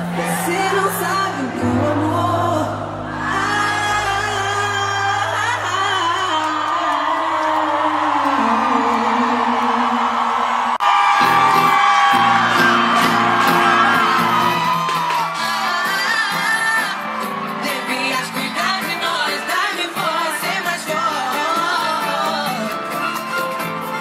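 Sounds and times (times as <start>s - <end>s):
live pop band: 0.0s - 24.0s
woman singing into a microphone: 0.1s - 10.4s, 15.2s - 23.0s.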